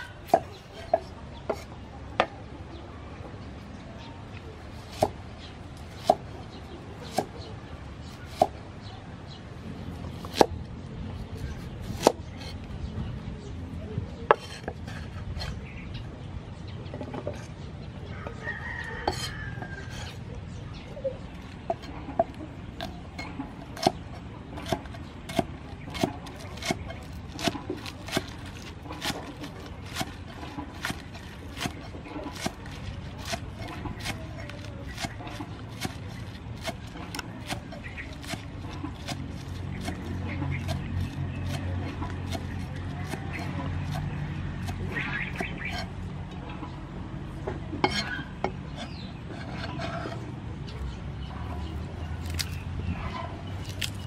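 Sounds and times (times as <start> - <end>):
cleaver chopping on wooden board: 24.6 - 45.9.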